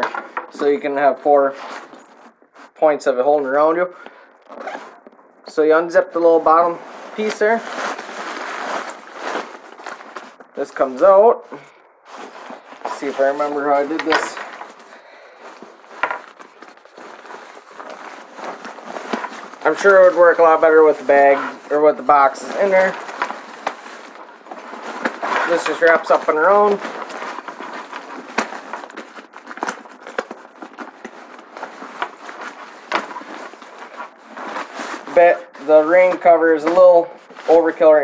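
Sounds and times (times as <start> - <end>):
rain cover rustling: 0.0 - 38.0.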